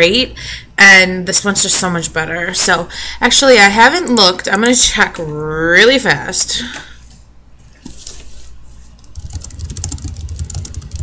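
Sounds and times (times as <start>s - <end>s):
typing on keyboard: 9.0s - 11.0s.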